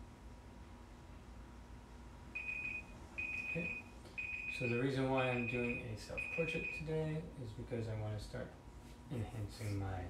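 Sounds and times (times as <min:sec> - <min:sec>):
timer alarm beeping: 0:02.4 - 0:06.9.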